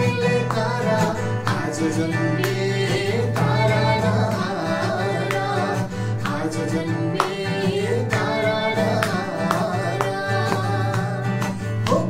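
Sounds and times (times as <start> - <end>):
man and girl singing a carol: 0.0 - 11.2
acoustic guitar strumming: 0.0 - 12.0.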